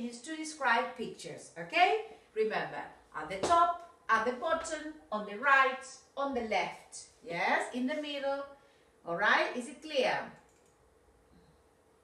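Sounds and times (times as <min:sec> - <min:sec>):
person speaking: 0:00.0 - 0:08.4
computer mouse clicks: 0:10.4 - 0:10.8.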